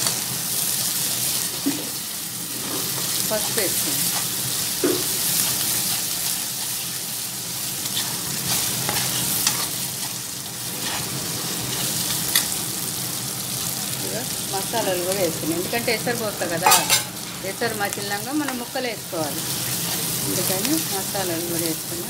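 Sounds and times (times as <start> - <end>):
vegetables sizzling in hot oil: 0.0 - 22.0
steel spoon scraping a pan: 7.8 - 12.6, 16.6 - 17.3.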